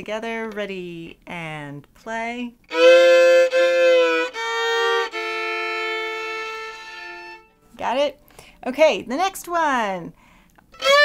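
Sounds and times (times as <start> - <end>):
fiddle playing double stops: 2.7 - 7.5, 10.8 - 11.0.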